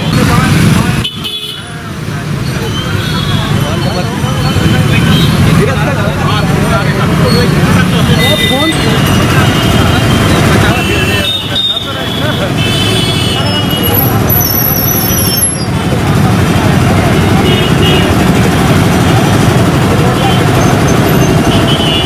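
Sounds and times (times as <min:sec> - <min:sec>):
engines rumbling: 0:00.0 - 0:22.0
people chattering: 0:00.0 - 0:22.0
vehicle horns honking: 0:00.9 - 0:01.8, 0:02.5 - 0:03.8, 0:07.3 - 0:15.7, 0:17.0 - 0:18.5, 0:20.0 - 0:22.0.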